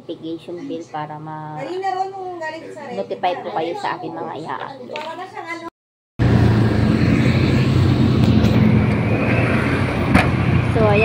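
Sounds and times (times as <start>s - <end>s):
road noise: 6.2s - 11.0s.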